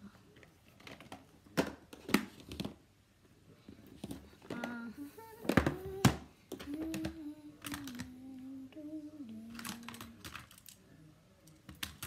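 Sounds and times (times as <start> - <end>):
girl humming: 4.6 - 10.0.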